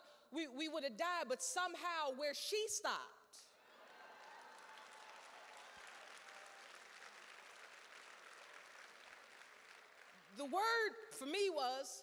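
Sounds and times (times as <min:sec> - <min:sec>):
audience applauding: 0:03.7 - 0:10.4.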